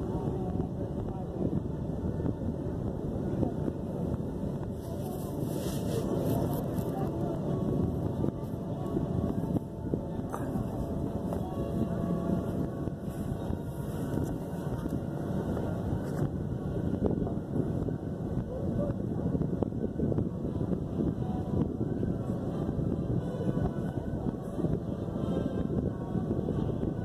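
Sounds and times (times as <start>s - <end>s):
wind on microphone: 0.0s - 27.0s.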